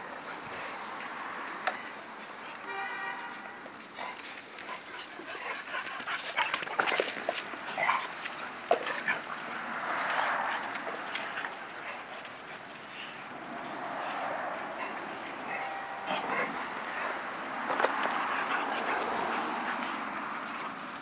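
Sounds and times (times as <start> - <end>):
sharp clicks and scuffs: 0.2 - 21.0
dogs growling while playing: 4.0 - 12.2, 13.4 - 20.5.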